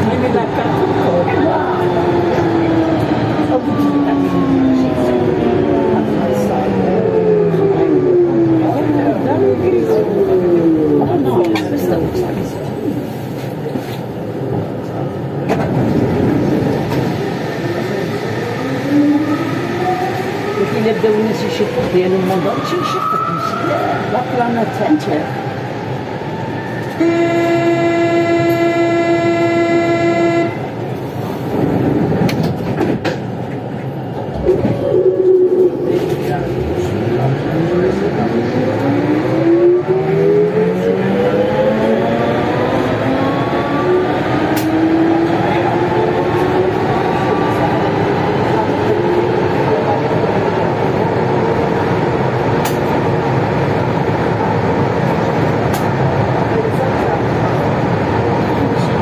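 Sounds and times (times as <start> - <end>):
train running noise: 0.0 - 59.0.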